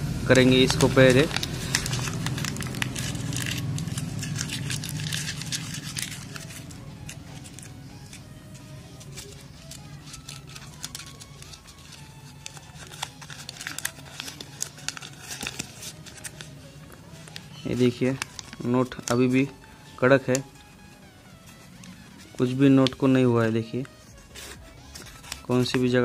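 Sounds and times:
low steady background sound: 0.0s - 26.0s
banknote crinkling and crackling: 0.4s - 26.0s.

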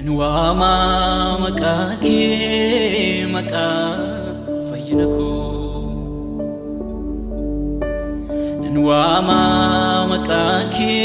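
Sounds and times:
gospel singing with instruments: 0.0s - 6.5s, 8.4s - 11.0s.

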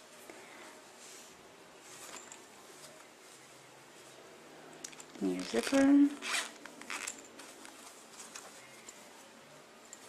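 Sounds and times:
fabric rustling: 0.0s - 10.0s.

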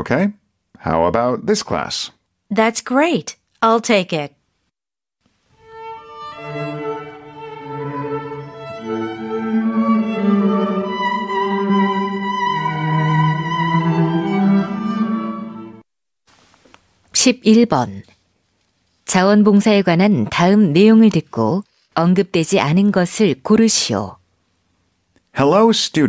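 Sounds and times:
instrumental music with held notes: 5.5s - 15.8s.

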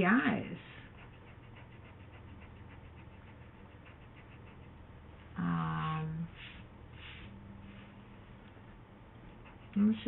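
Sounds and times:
eraser rubbing on paper: 0.9s - 4.7s, 9.3s - 10.0s.

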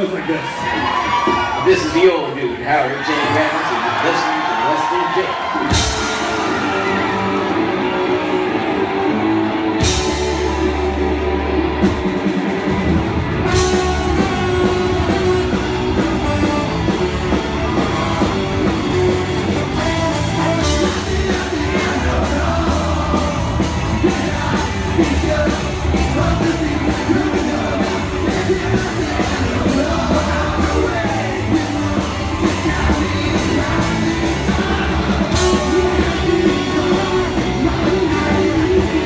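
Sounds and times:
ska-punk band playing live: 0.0s - 1.9s, 4.4s - 39.0s
steady drum beat: 5.6s - 7.9s, 9.8s - 39.0s
person singing: 13.4s - 39.0s.

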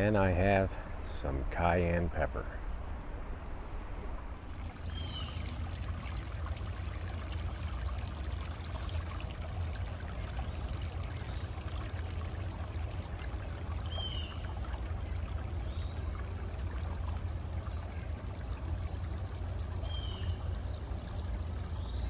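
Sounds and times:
creek babbling over stones: 4.2s - 22.0s.

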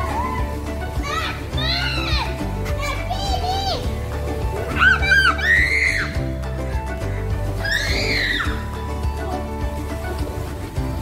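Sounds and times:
children playing and shouting: 0.0s - 11.0s
music playing: 0.0s - 11.0s.

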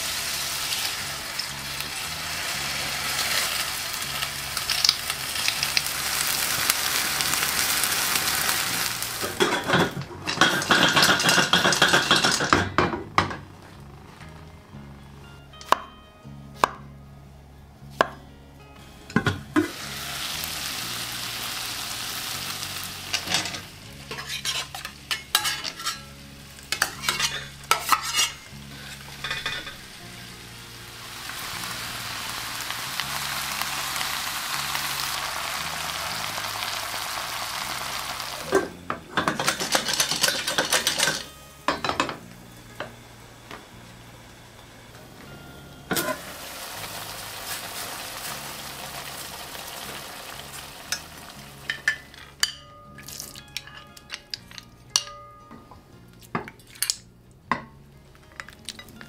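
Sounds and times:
food sizzling in a pan: 0.0s - 12.6s, 19.2s - 55.1s
utensil clattering against pan: 9.2s - 13.4s, 23.1s - 26.1s, 26.7s - 28.5s, 29.2s - 29.8s, 38.5s - 42.2s
metal lid clink: 9.4s - 12.8s, 23.1s - 26.1s, 26.7s - 28.5s, 29.2s - 29.8s, 38.5s - 42.2s, 45.9s - 46.2s, 51.7s - 55.4s.

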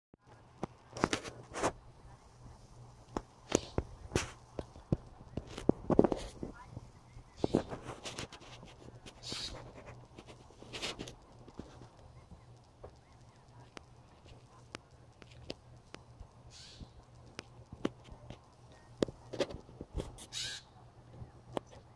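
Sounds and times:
blue jay harsh calls: 9.2s - 9.6s, 16.5s - 17.0s, 20.3s - 20.8s
bird clicks: 11.0s - 19.2s.

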